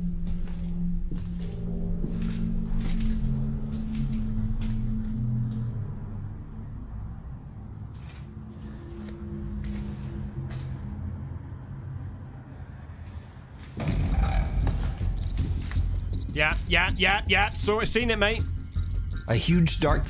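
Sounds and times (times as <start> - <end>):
dark ambient music drone: 0.0 - 20.0.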